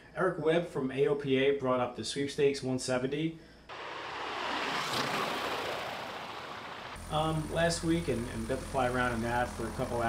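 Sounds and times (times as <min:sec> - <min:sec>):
rushing whoosh: 0:03.7 - 0:07.0.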